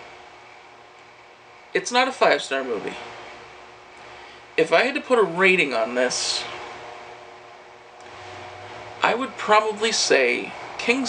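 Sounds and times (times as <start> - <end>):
faint hum: 0.0 - 11.0
steady low hiss: 0.0 - 11.0.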